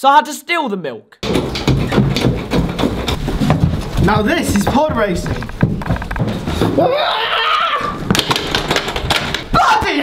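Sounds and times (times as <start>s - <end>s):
bicycle clattering down stairs: 1.2s - 6.8s, 8.0s - 9.6s.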